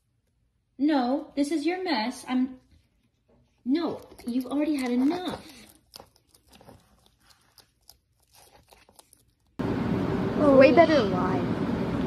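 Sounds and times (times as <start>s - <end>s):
lizard chewing crunches: 4.0s - 9.6s
loud steady outdoor noise: 9.6s - 12.0s.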